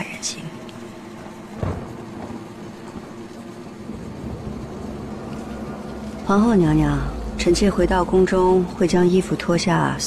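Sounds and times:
low background noise: 0.0 - 10.0.

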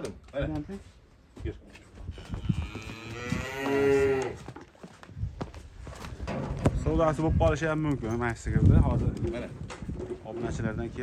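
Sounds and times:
cow mooing: 2.4 - 4.4.

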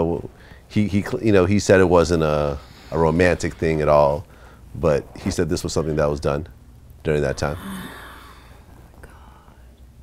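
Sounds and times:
woman sighing: 7.4 - 8.6.

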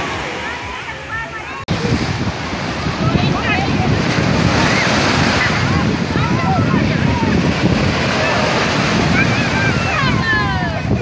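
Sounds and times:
waves breaking in shallows: 0.0 - 11.0
wind buffeting microphone: 1.6 - 11.0
distant voices and shouts: 2.7 - 11.0.

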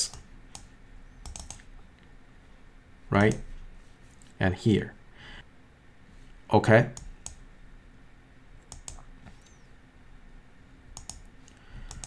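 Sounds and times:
computer mouse clicks: 0.0 - 2.1, 3.2 - 3.4, 6.9 - 7.4, 8.6 - 9.6, 10.9 - 12.0
low background hum: 0.0 - 12.0.

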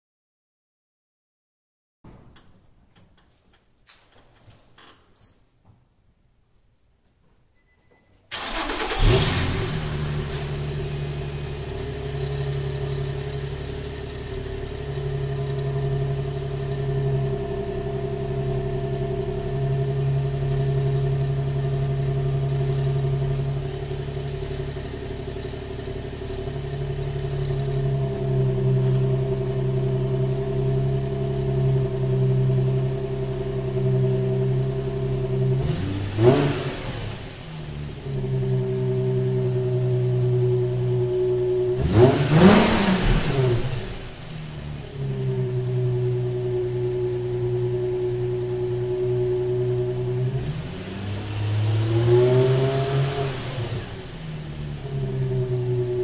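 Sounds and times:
car engine starting and idling: 8.3 - 56.0
engine revving: 8.4 - 56.0.

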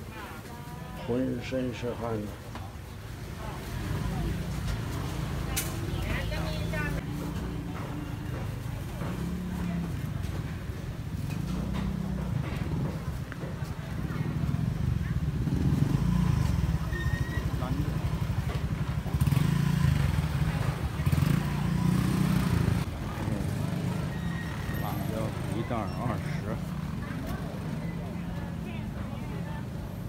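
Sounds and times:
motorcycle engine rumbling: 2.7 - 30.0.

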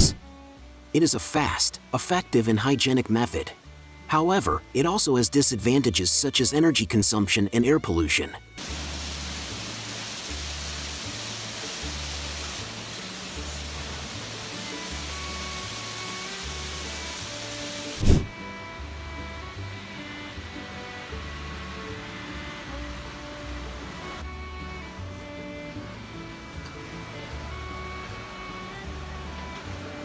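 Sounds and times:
even hiss: 8.6 - 30.0
sudden loud hit: 18.0 - 18.3.

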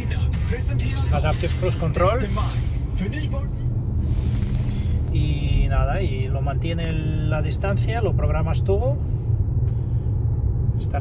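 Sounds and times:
road rumble inside car: 0.0 - 11.0.

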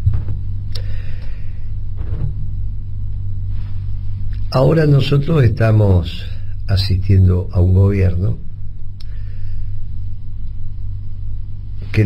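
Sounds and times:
low humming rumble: 0.0 - 12.0.

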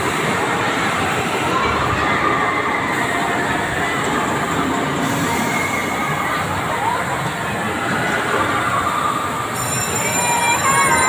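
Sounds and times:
amusement ride machinery rumbling: 0.0 - 11.0
high squeals: 9.5 - 11.0.

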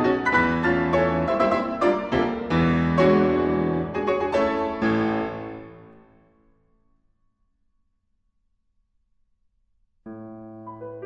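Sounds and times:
grand piano chords: 0.0 - 7.0, 10.1 - 11.0.

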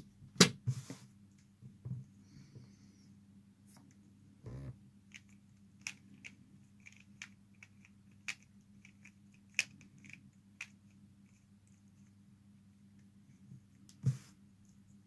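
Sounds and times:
plastic puzzle clicking: 5.1 - 10.8.

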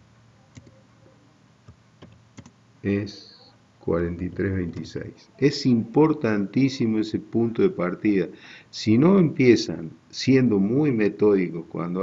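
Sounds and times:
computer keyboard keystrokes: 0.6 - 0.8, 2.0 - 2.6
man speaking: 2.8 - 12.0.

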